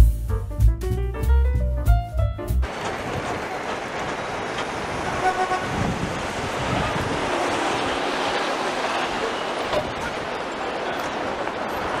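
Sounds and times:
passing vehicles hiss: 2.6s - 12.0s.

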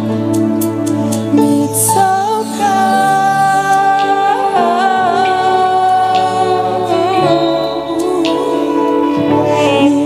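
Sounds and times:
band playing slow song: 0.0s - 10.0s
person singing: 1.3s - 10.0s.

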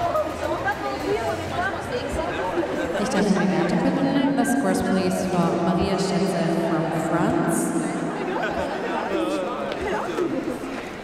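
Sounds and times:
overlapping voices chattering: 1.1s - 11.0s.

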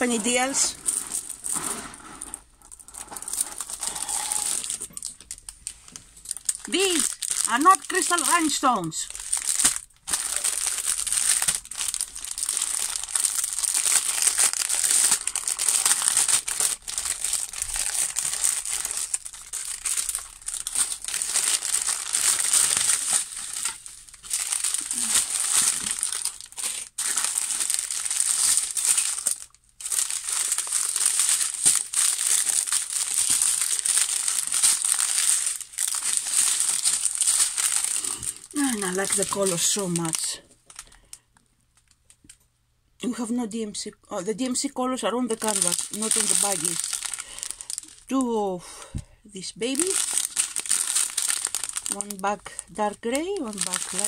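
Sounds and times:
plastic packaging crinkling: 0.0s - 42.4s, 45.0s - 54.0s.

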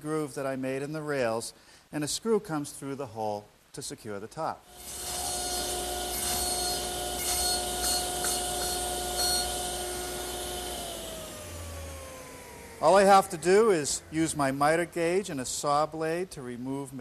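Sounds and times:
saw blade cutting wood: 4.7s - 11.3s
saw spinning down: 4.7s - 14.1s
table saw humming: 4.7s - 15.2s.

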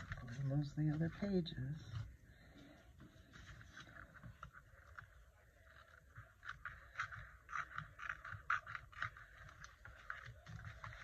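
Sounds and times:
paper rustling and scraping: 0.0s - 11.0s.

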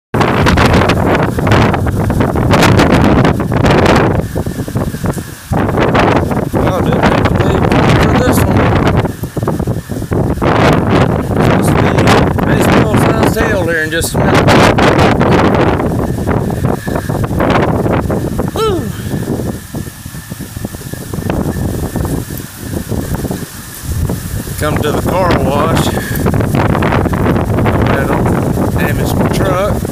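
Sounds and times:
wind gusting across microphone: 0.1s - 29.9s
heavy rain falling: 0.2s - 29.9s.

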